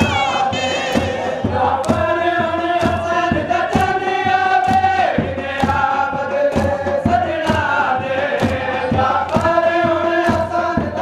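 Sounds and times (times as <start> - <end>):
men chanting together: 0.0 - 11.0
rhythmic chest-beating slaps: 0.0 - 11.0.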